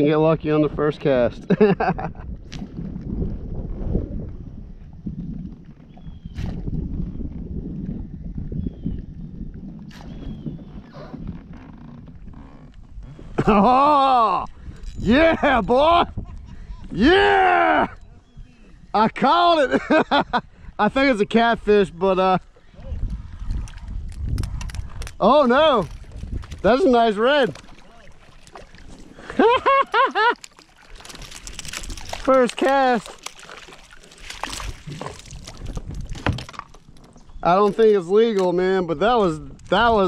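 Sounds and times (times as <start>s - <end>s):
wind buffeting microphone: 0.0s - 30.0s, 30.7s - 40.0s
water lapping against kayak: 1.4s - 17.3s, 17.9s - 21.4s, 22.4s - 40.0s.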